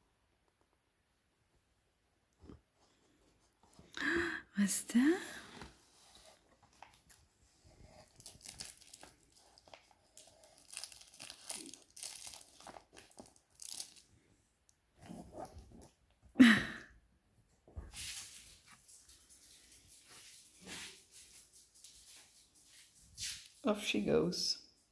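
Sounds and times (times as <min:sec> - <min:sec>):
plastic packaging crinkling: 0:06.6 - 0:14.1.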